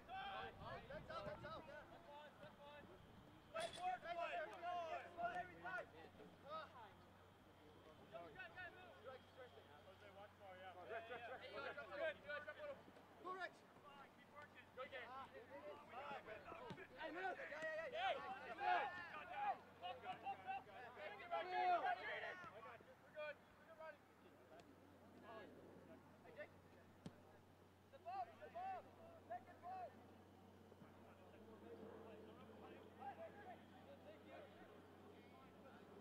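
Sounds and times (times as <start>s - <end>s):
voices calling and shouting: 0.0s - 26.2s.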